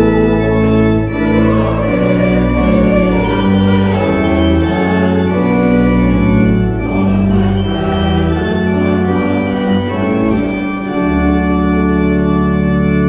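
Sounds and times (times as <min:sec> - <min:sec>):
organ playing a hymn: 0:00.0 - 0:13.0.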